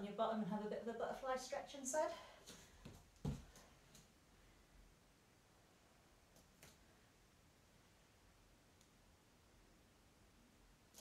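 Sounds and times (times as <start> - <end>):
soft thump on foam mat: 3.2 - 3.5.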